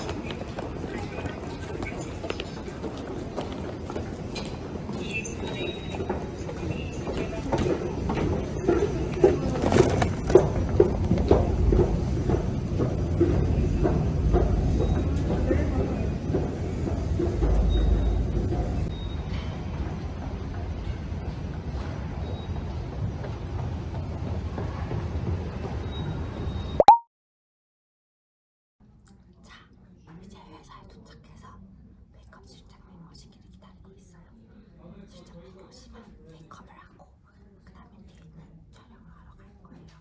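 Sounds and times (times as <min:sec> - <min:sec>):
woman speaking softly: 0:29.0 - 0:34.6, 0:35.2 - 0:40.0.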